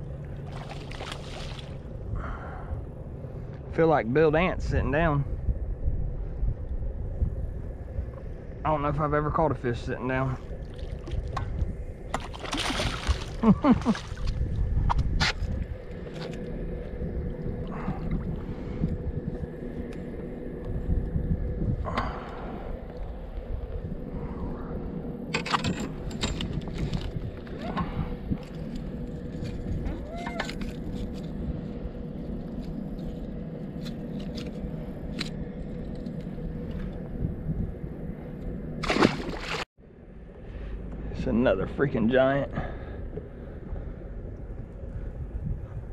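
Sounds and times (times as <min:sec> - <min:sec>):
faint steady hum: 0:00.0 - 0:45.9
fish thrashing and splashing: 0:12.1 - 0:14.4, 0:38.8 - 0:39.7.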